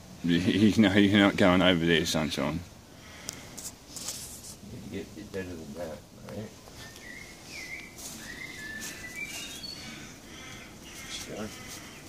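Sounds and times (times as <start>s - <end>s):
bird singing whistled notes: 6.6s - 10.1s.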